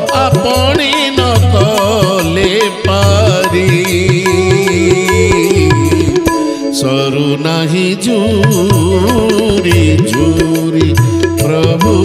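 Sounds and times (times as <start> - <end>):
accompanying instruments: 0.0 - 12.0
bamboo flute melody: 4.3 - 7.8.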